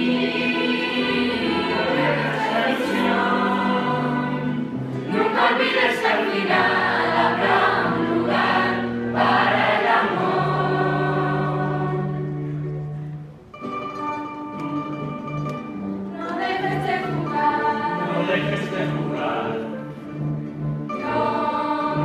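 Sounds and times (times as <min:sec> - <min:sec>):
choir singing long held notes: 0:00.0 - 0:12.8, 0:16.1 - 0:20.2, 0:20.9 - 0:22.0.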